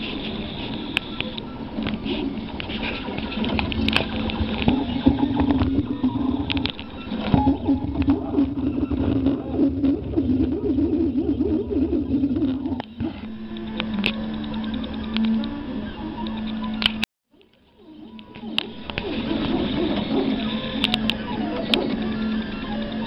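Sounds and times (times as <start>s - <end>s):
stepper motors whining: 0.0s - 23.0s.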